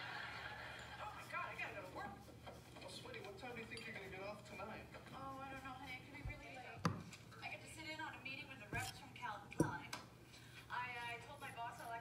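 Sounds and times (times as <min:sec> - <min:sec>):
woman speaking: 0:05.1 - 0:10.0, 0:10.7 - 0:12.0.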